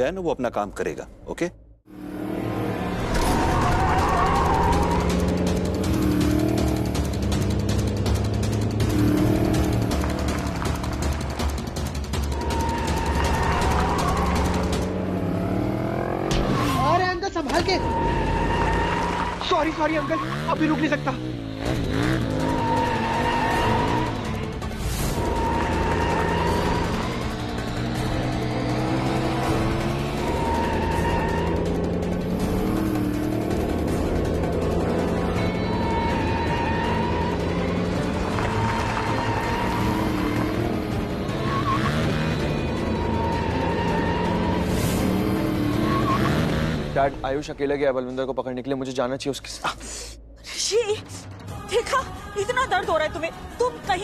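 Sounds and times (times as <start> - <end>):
background music: 0.0 - 54.0
motor vehicle engine revving: 1.9 - 17.0, 17.8 - 47.2
tyre squeal: 41.3 - 46.7.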